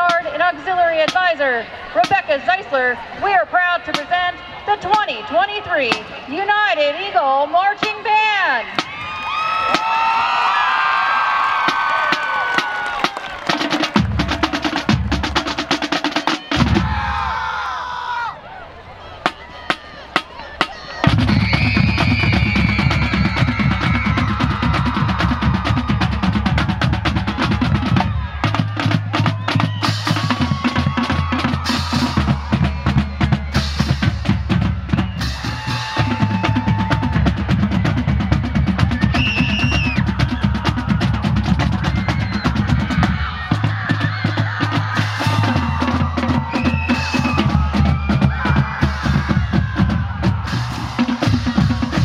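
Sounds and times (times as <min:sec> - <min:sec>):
marching band playing: 0:00.0 - 0:17.6, 0:19.0 - 0:52.0.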